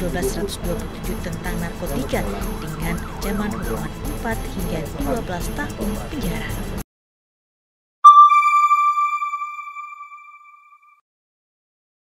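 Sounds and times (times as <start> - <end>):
high electronic chime tone: 8.0 - 10.8.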